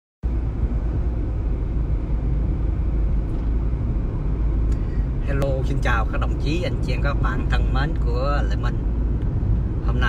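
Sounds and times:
low rumbling background noise: 0.2s - 10.0s.

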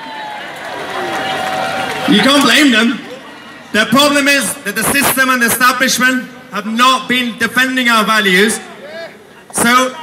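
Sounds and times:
crowd hubbub: 0.0s - 4.0s, 8.4s - 10.0s.

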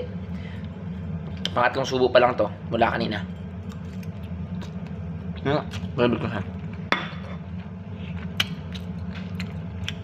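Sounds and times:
steady low hum: 0.0s - 10.0s
man chewing noodles: 8.1s - 10.0s.

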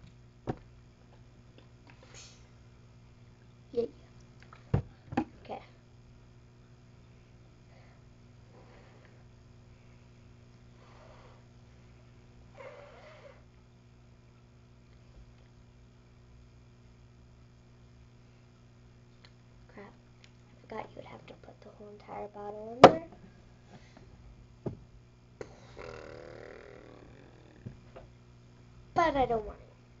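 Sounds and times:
faint steady hum: 0.0s - 30.0s
person humming or mumbling: 25.4s - 27.8s
high-pitched wavering vocal sound: 25.6s - 27.6s.

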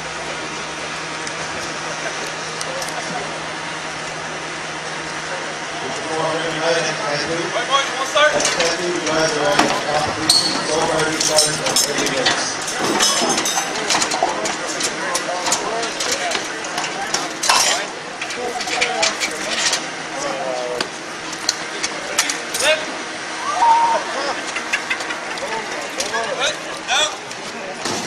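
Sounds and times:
crowd chatter and shouts: 0.0s - 28.0s
metal clanks and knocks from tools: 9.6s - 19.8s.

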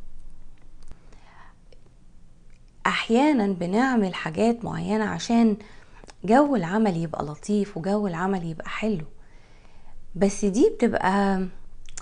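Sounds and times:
woman breathing softly: 0.9s - 1.7s, 5.6s - 6.1s, 9.2s - 10.1s.

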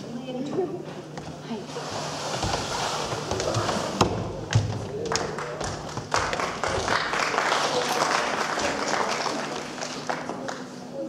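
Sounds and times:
cardboard box scraping on wooden floor: 1.7s - 4.1s.

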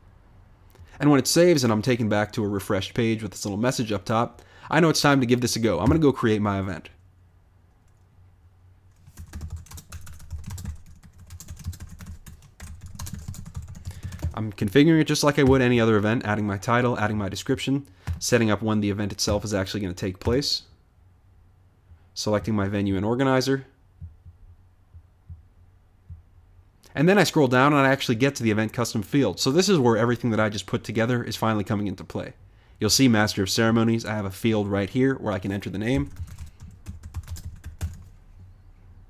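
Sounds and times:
computer keyboard typing: 8.9s - 14.4s, 36.0s - 38.1s
muffled low thumps: 23.9s - 26.5s.

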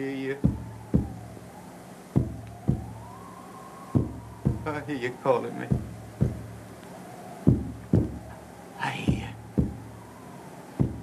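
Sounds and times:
low heartbeat-like thuds: 0.4s - 1.4s, 2.2s - 3.2s, 4.0s - 4.9s, 5.7s - 6.7s, 7.4s - 8.4s, 9.1s - 10.1s, 10.8s - 11.0s.

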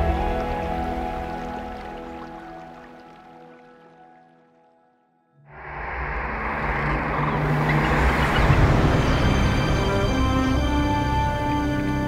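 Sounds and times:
theme music: 0.0s - 4.7s, 5.4s - 12.0s
noisy whoosh with deep rumble: 5.5s - 11.7s.

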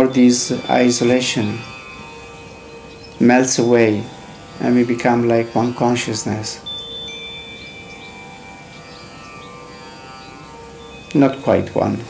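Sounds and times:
ambient chime-like music: 0.0s - 12.0s
high struck note: 0.0s - 12.0s.

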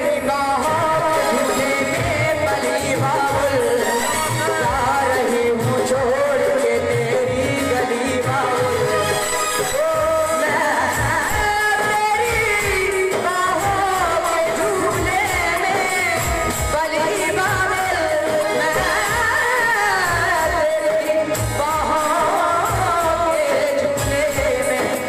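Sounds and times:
man singing into a microphone: 0.0s - 25.0s.

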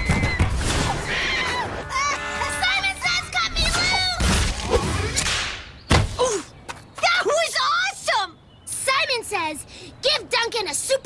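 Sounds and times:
falling cry: 1.0s - 2.6s.

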